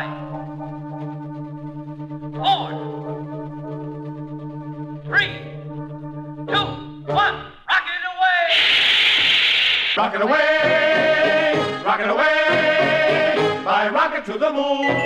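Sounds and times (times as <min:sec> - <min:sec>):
low droning chord: 0:00.0 - 0:07.1
swooping pitch glides: 0:00.0 - 0:07.6
rocket blast rush of noise: 0:08.5 - 0:10.0.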